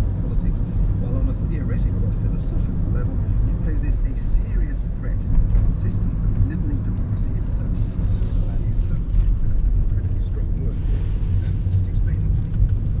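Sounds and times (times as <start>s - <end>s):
car engine and tyre rumble: 0.0s - 13.0s.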